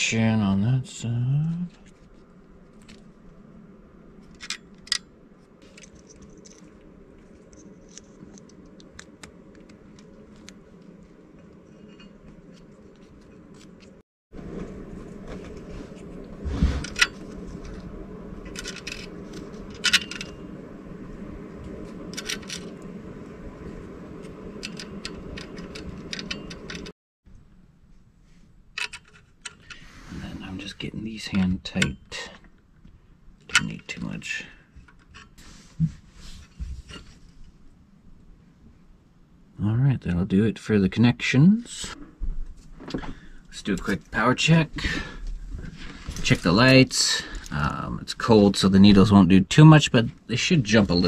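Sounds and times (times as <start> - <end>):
steady low hum: 0.0 - 51.0
clicks and rattles of connectors: 24.6 - 26.9.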